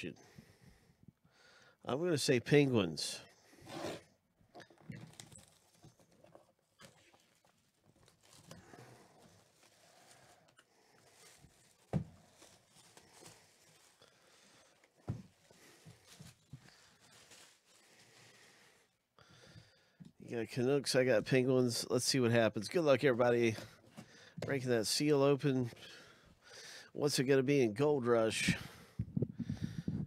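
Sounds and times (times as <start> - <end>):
rustling of shrink-wrapped box: 5.0 - 18.4.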